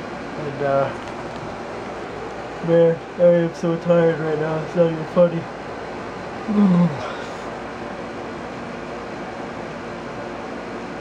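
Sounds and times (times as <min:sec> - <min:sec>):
air conditioner running: 0:00.0 - 0:11.0
young man yawning: 0:06.5 - 0:07.5.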